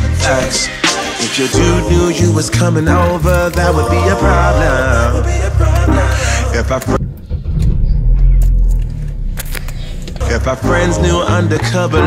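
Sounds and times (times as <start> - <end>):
car engine rumble inside cabin: 4.8 - 10.9.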